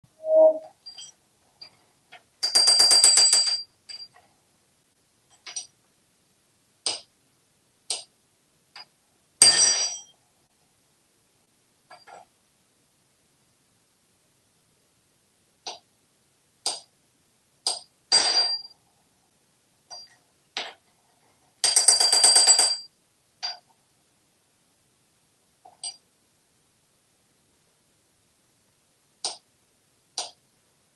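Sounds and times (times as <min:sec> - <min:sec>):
metal spoon clinking on sink: 0:05.3 - 0:05.7.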